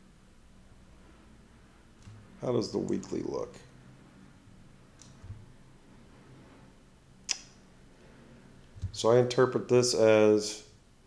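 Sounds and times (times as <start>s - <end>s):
faint low room hum: 0.0s - 11.0s
sharp click: 7.3s - 7.6s.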